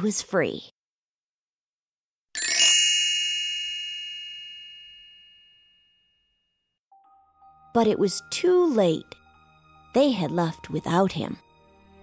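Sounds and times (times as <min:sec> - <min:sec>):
bright metallic chime: 0:02.4 - 0:06.3.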